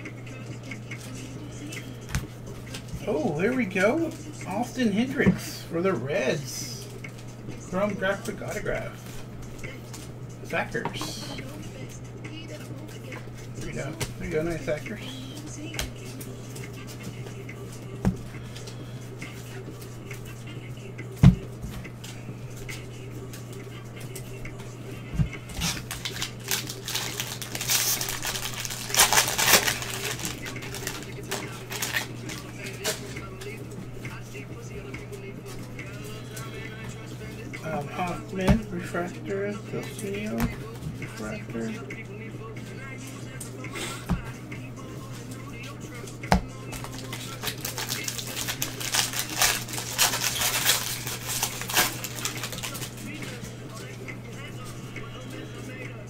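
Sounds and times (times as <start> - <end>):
steady low hum: 0.0 - 56.0
cards and foil wrapper rustling: 25.6 - 33.6, 46.6 - 53.1.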